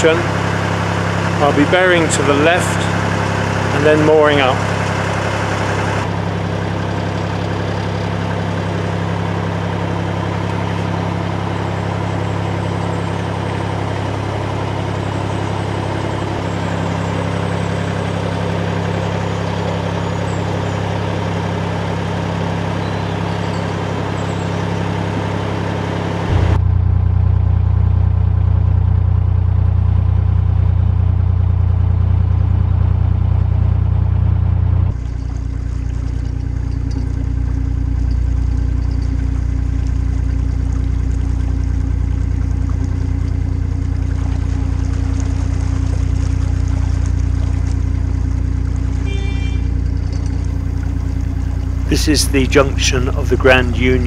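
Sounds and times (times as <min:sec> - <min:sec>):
diesel boat engine running: 0:00.0 - 0:54.0.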